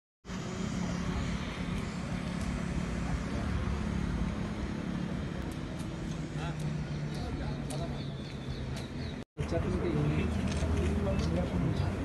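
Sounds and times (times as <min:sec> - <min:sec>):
vehicle engine running: 0:00.3 - 0:11.5.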